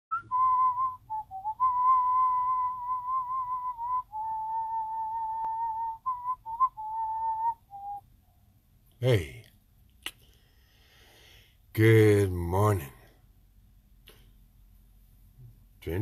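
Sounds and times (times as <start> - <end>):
man whistling a slow tune: 0.1 - 8.1.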